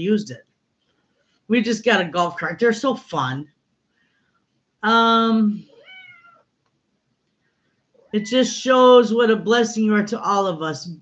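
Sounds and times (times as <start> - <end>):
cat meowing: 5.7 - 6.5.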